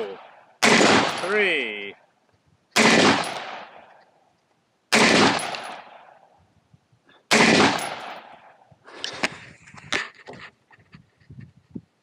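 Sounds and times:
rifle shots with echo: 0.0 - 1.8, 2.8 - 4.0, 4.9 - 6.3, 7.3 - 8.7.

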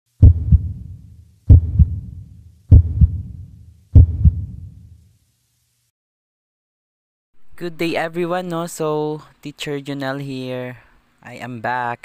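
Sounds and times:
heartbeat double thumps: 0.2 - 4.9.

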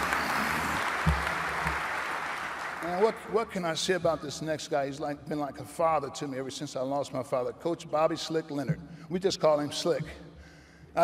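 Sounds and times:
audience applauding: 0.0 - 3.4.

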